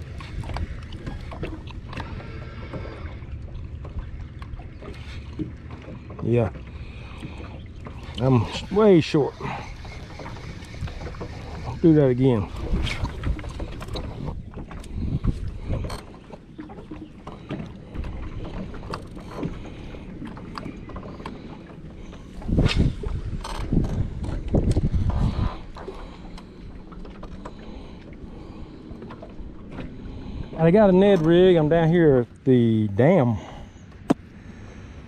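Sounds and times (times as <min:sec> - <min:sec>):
wind buffeting microphone: 0:06.4 - 0:21.2, 0:22.3 - 0:26.1.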